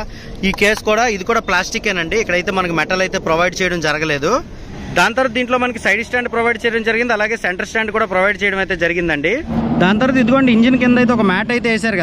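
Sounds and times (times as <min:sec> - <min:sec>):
outdoor background noise: 0:00.0 - 0:12.0
man speaking: 0:09.2 - 0:12.0.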